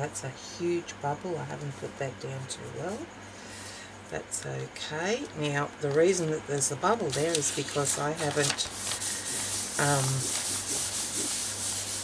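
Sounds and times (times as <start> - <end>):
hand rubbing paper page: 7.0 - 12.0.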